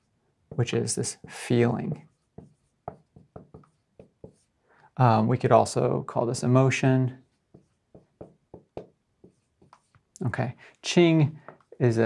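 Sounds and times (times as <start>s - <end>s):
marker writing on a whiteboard: 0.0s - 4.6s, 7.2s - 10.2s, 11.4s - 12.0s.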